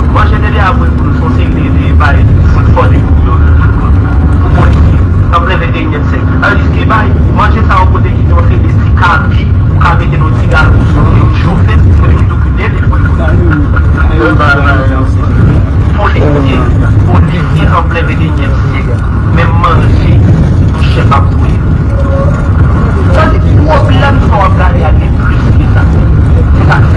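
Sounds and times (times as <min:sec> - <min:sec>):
person talking: 0:04.4 - 0:26.9.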